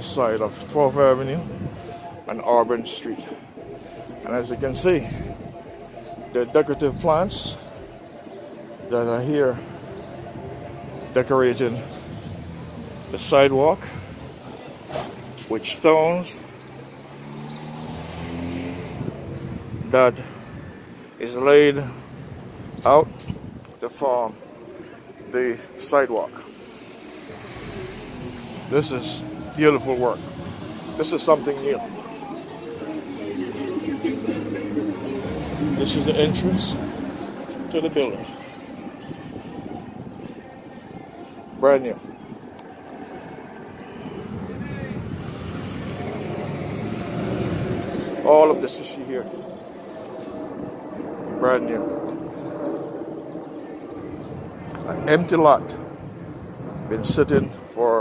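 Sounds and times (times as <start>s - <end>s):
car engine passing by: 16.4s - 21.0s, 26.2s - 42.0s, 42.7s - 54.2s.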